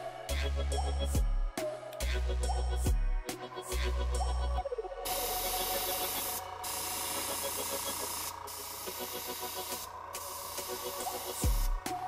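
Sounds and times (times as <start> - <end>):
airbrush spraying hiss: 5.0 - 12.0.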